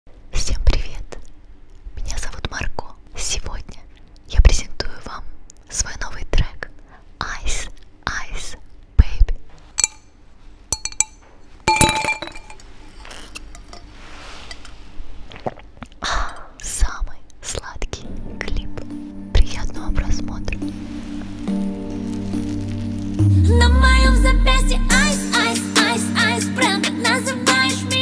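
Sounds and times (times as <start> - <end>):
woman whispering into microphone: 0.3 - 1.2, 2.0 - 9.4, 16.6 - 18.7
glass clinking with bright ring: 9.8 - 10.1, 10.8 - 13.9.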